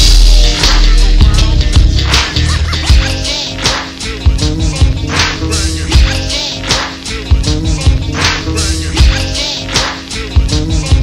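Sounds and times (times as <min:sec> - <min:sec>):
slowed hip hop beat: 0:00.0 - 0:11.0.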